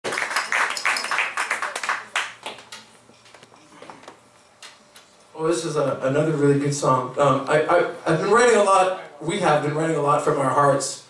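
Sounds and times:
audience clapping: 0.0 - 2.9.

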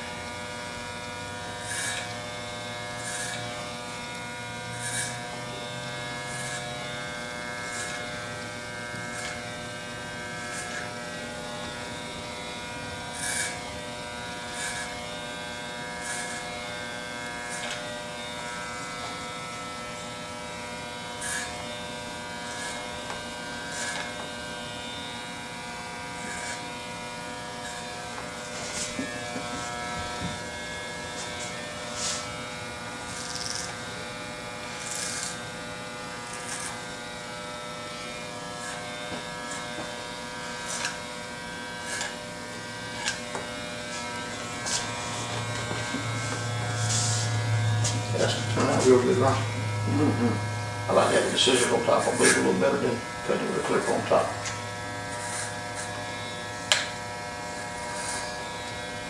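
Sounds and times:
hair clippers buzzing: 0.0 - 59.0
clippers hissing through hair: 1.6 - 2.2, 3.0 - 3.6, 4.6 - 8.3, 9.0 - 59.0.

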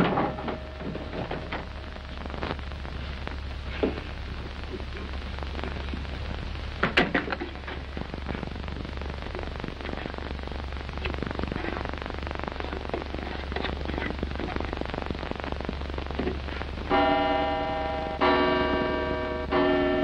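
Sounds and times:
film hiss and crackle: 0.0 - 20.0
low hum: 0.0 - 20.0.

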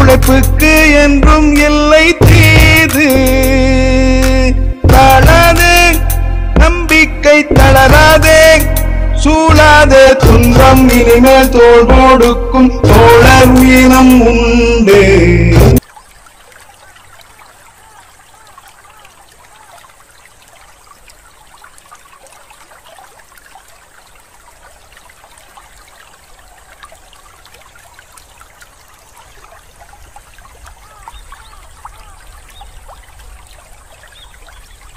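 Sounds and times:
trickling water: 15.8 - 34.9.

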